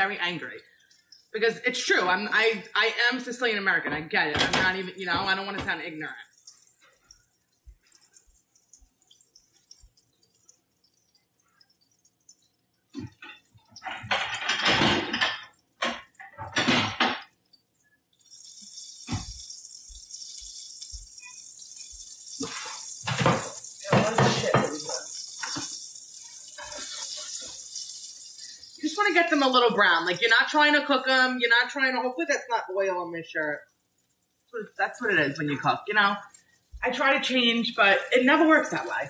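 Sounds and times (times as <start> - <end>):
tap water running: 0.0 - 39.0
hands washing under water: 18.6 - 30.4.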